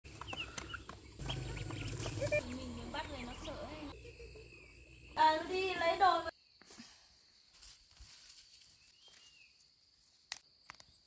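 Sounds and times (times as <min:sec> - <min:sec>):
chickens clucking: 0:00.1 - 0:05.2.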